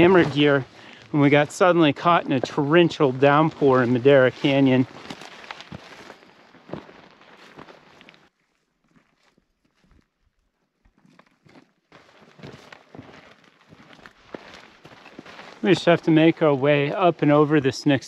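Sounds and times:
footsteps on gravel: 0.0s - 10.1s, 10.8s - 17.4s.

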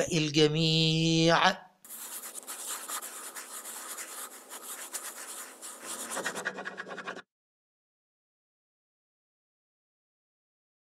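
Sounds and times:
quill pen scratching on paper: 1.9s - 7.3s.

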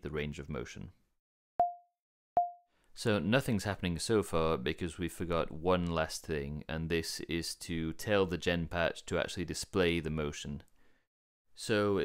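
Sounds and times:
short synthesized pings: 1.6s - 2.6s.

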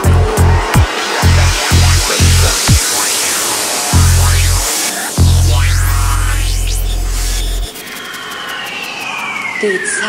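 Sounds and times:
pulsing kick and bass: 0.0s - 3.2s, 3.9s - 7.8s
rush of high noise: 0.0s - 9.4s
long held bass note: 3.9s - 7.6s.

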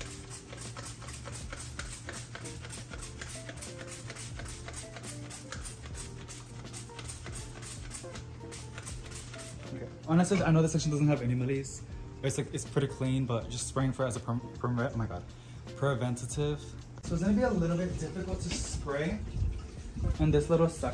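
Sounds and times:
music with quick beat: 0.0s - 11.2s.

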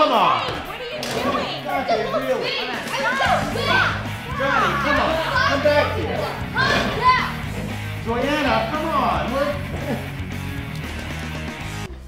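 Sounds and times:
background music: 0.0s - 12.0s
children and adults calling out: 0.6s - 7.4s
steady low bass: 3.4s - 11.9s.

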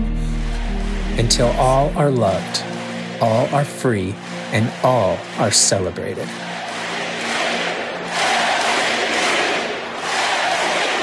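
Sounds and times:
girls clapping and cheering: 0.0s - 11.0s.

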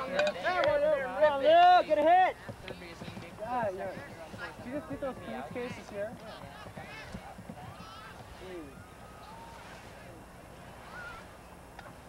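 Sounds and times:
distant chatter of spectators: 0.0s - 12.0s.

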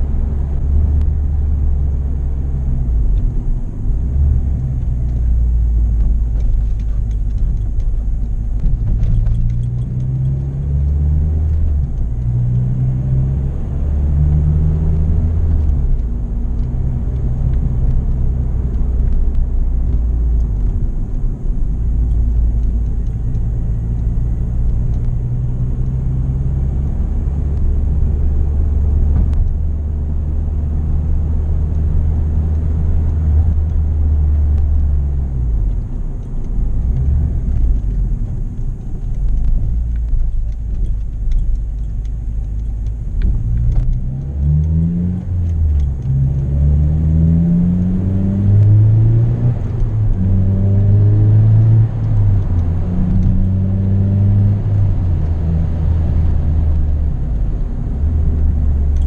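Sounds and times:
car engine droning inside cabin: 0.0s - 59.0s.

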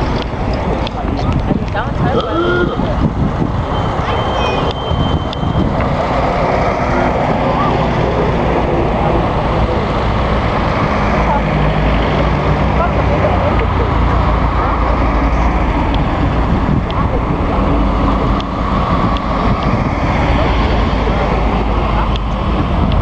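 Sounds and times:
cars driving past: 0.0s - 23.0s
wind rumble on microphone: 0.0s - 23.0s.

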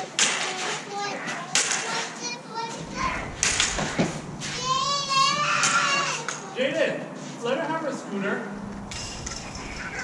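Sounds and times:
lightsaber blades clacking: 3.0s - 4.3s.

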